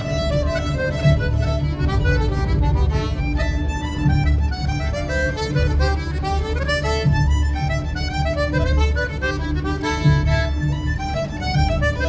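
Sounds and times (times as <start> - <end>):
accordion playing a melody: 0.0 - 12.0
fiddle playing a melody: 0.0 - 12.0
pulsing bass: 0.0 - 12.0.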